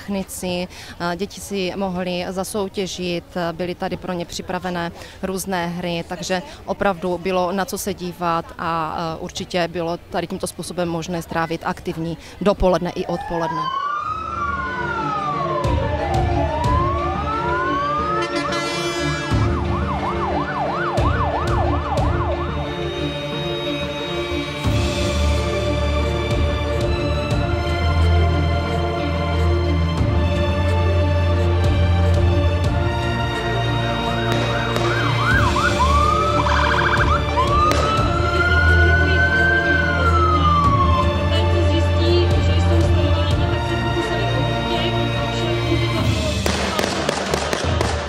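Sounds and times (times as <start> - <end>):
fire engine siren: 13.2 - 24.5, 34.0 - 42.0.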